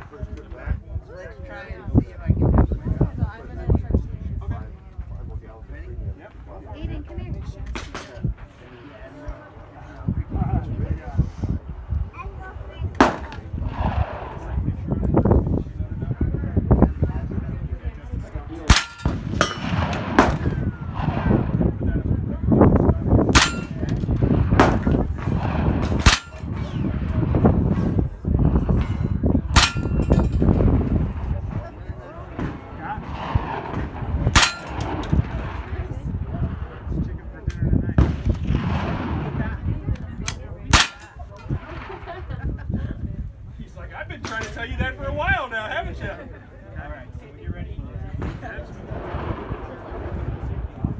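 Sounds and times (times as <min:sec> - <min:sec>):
wind rumble on microphone: 0:00.0 - 0:50.9
rifle shots cracking: 0:13.0 - 0:14.4, 0:18.7 - 0:21.6, 0:23.3 - 0:27.1, 0:29.6 - 0:30.7, 0:32.3 - 0:35.7, 0:40.7 - 0:42.1
metallic ring: 0:29.6 - 0:30.5.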